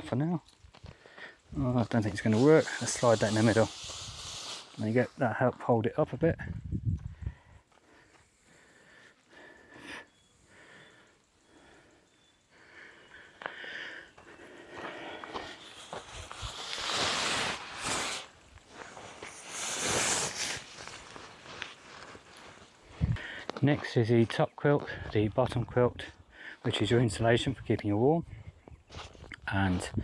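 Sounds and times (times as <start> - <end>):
hammock fabric rustling: 15.5 - 23.1.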